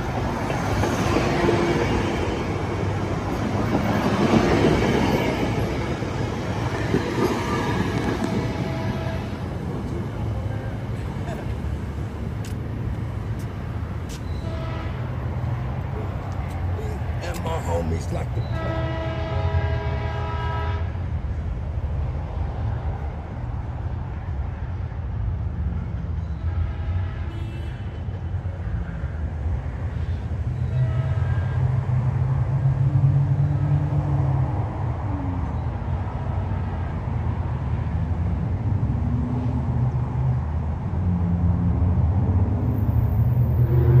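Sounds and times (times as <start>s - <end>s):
diesel locomotive engine drone: 0.0s - 44.0s
train rumbling along track: 0.0s - 44.0s
train air horn chord: 18.5s - 20.9s.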